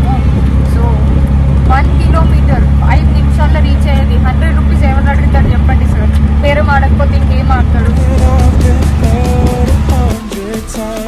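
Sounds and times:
auto-rickshaw engine rumbling: 0.0 - 11.0.

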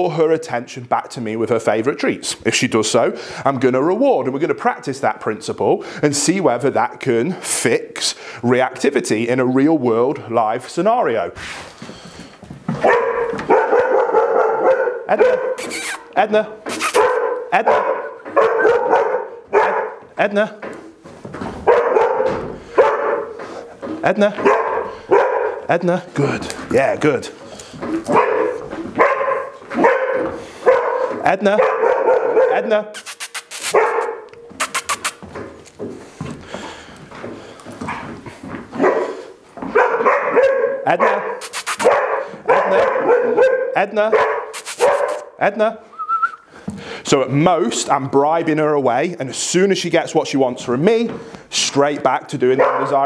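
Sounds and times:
dog barking high-pitched: 12.8 - 16.1, 16.7 - 20.0, 21.6 - 23.3, 24.4 - 25.6, 28.1 - 35.1, 38.8 - 45.3, 52.6 - 53.0.

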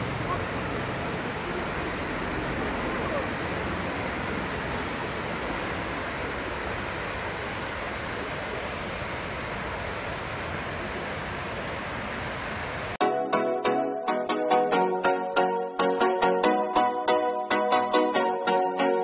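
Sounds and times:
waterfall rushing: 0.0 - 13.0.

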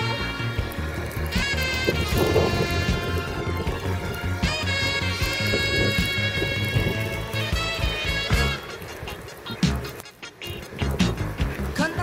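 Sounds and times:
music with beat and bass: 0.0 - 12.0.

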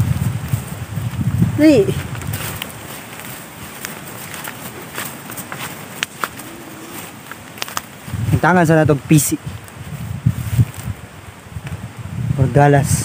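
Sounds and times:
footsteps through grass: 0.0 - 11.4.

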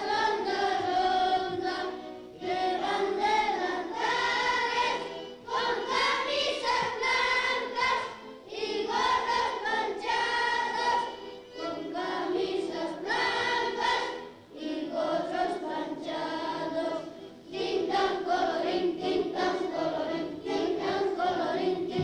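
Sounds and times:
children singing in unison: 0.0 - 22.0.

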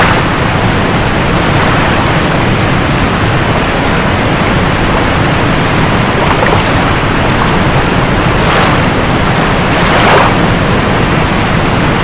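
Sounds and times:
waterfall rushing: 0.0 - 12.0.

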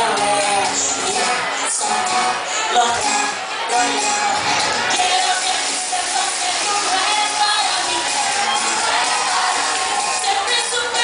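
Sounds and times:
crowd cheering: 0.0 - 11.0
pop band playing live: 0.0 - 11.0.

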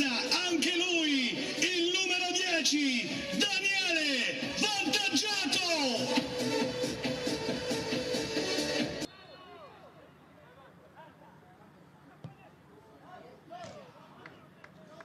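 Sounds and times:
loud music with singing: 0.0 - 9.1
faint shouts of players: 9.1 - 11.2.

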